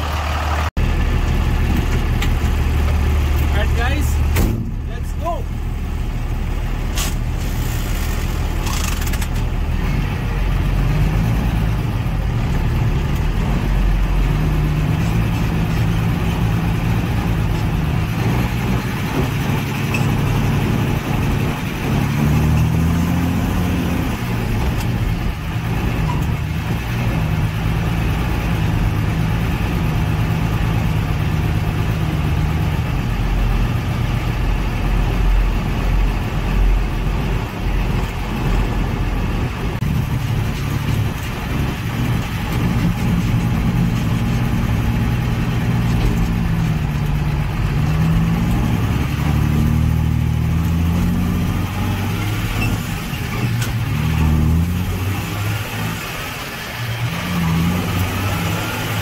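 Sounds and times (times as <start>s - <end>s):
diesel truck engine: 0.0s - 59.0s.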